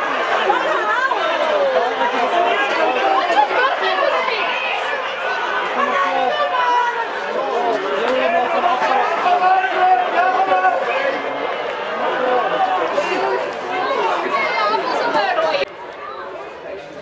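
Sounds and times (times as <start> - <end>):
overlapping voices chattering: 0.0 - 17.0.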